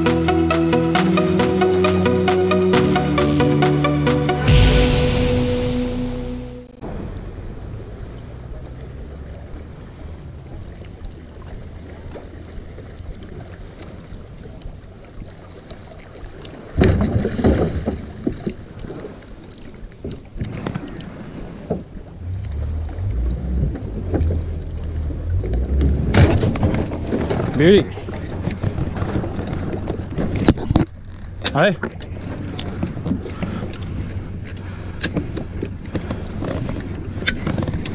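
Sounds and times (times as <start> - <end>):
wind and water noise on microphone: 6.8 - 37.9
outboard motor running: 21.8 - 37.9.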